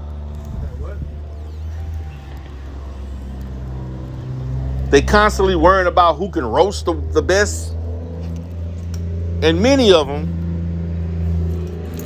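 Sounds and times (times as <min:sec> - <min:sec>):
car interior drone: 0:00.0 - 0:12.0.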